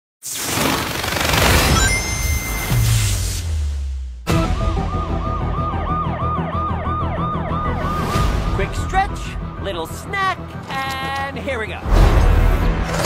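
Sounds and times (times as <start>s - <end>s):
siren wailing in fast yelp: 5.6s - 8.0s.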